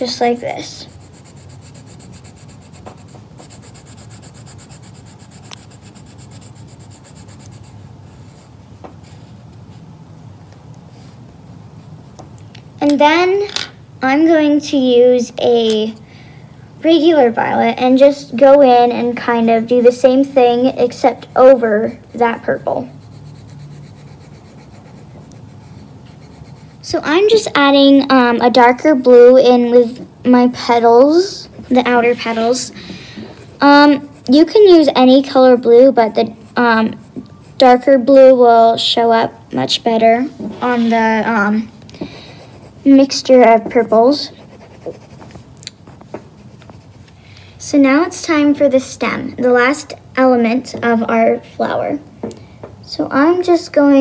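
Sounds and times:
pencil shading on paper: 0.0s - 7.8s, 19.1s - 27.5s, 33.4s - 38.4s, 40.6s - 45.4s, 46.2s - 47.0s
light pencil ticks: 5.4s - 5.7s.

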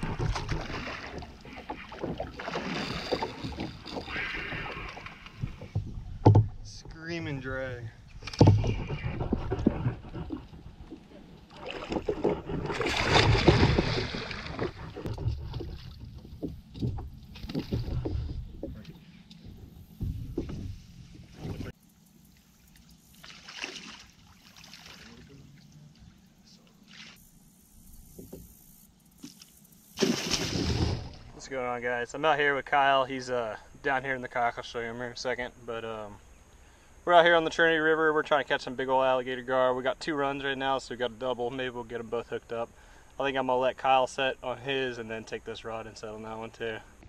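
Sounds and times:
water splashing: 0.0s - 6.6s, 8.2s - 18.9s, 20.2s - 27.3s, 29.2s - 31.5s
bumps and knocks on kayak: 0.0s - 6.7s, 8.2s - 21.7s.

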